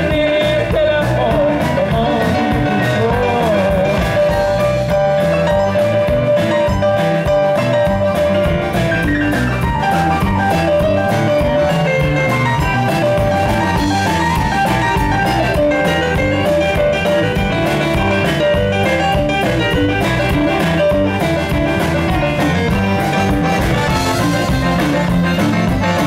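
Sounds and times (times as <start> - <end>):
drum kit steady beat: 0.0 - 26.0
electric bass: 0.0 - 26.0
electric guitar: 0.0 - 26.0
stage piano: 0.0 - 26.0.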